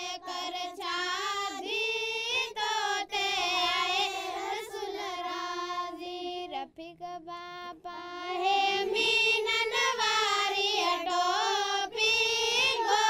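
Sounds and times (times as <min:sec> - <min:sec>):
high voice singing unaccompanied: 0:00.0 - 0:13.0.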